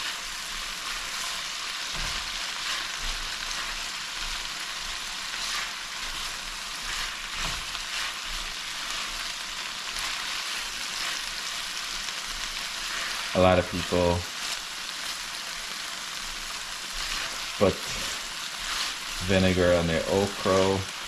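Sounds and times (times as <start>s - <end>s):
spatula scraping a pan: 0.0s - 13.3s, 16.2s - 21.0s
food sizzling in oil: 0.0s - 21.0s.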